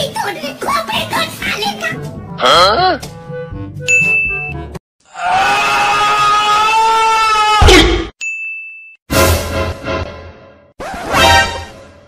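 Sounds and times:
high electronic ding: 0:03.9 - 0:04.6.

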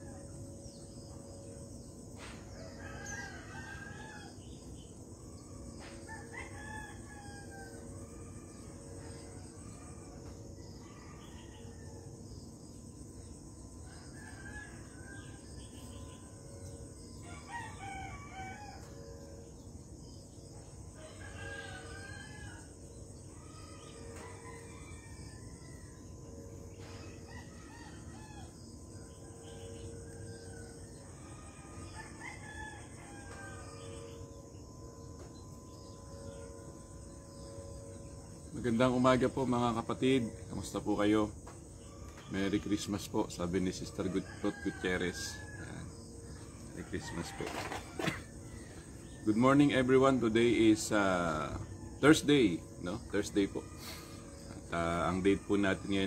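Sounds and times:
steady high-pitched tone: 0:32.8 - 0:56.0.

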